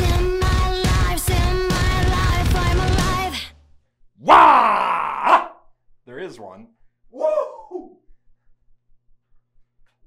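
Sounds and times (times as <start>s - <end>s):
man groaning yell: 4.2s - 5.6s, 7.2s - 8.0s.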